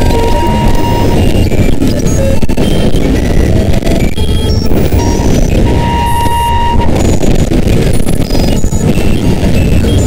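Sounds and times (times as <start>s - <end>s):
distorted noise music: 0.0s - 10.0s
steady high tone: 0.0s - 10.0s.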